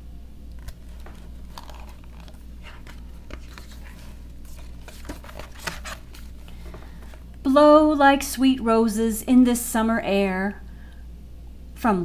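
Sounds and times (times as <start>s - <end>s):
steady low hum: 0.0s - 12.0s
book pages rustling: 0.5s - 7.4s.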